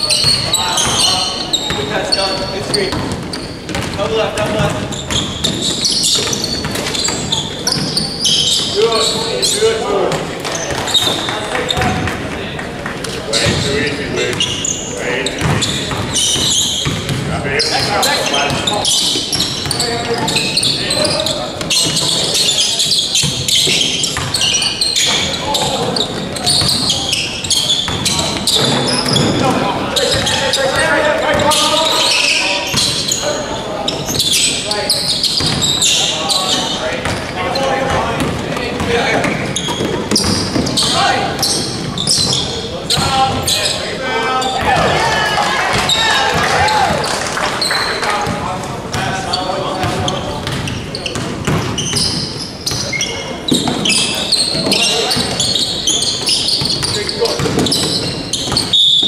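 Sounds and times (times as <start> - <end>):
players' voices and calls: 0.0 - 59.0
basketball bouncing on hardwood: 2.9 - 5.6, 15.4 - 17.3, 37.9 - 38.4, 49.8 - 51.8.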